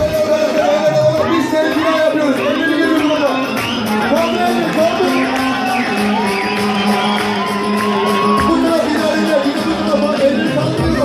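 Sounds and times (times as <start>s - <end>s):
crowd whooping and shouting: 0.0s - 11.0s
live band playing dance music: 0.0s - 11.0s.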